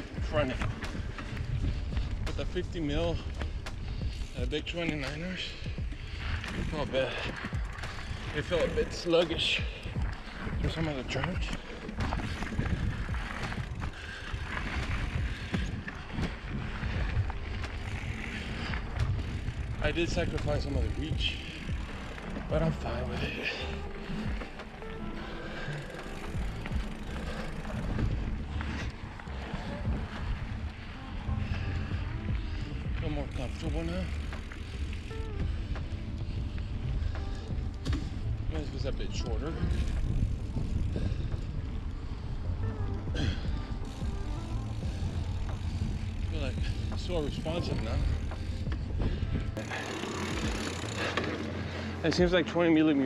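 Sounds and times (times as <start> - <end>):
wind rumbling on microphone: 0.0 - 24.8, 25.6 - 51.0
bike knocks and rattles: 0.0 - 25.0, 43.0 - 52.4
steady low hum: 0.0 - 52.1
background music: 0.0 - 53.0.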